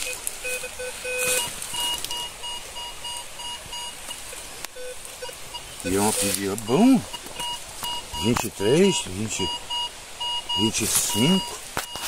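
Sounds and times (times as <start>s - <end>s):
metal detector beeping: 0.0s - 12.0s.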